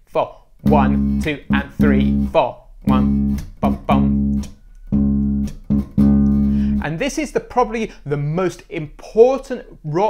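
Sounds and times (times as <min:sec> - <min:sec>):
electric bass guitar groove: 0:00.6 - 0:07.0.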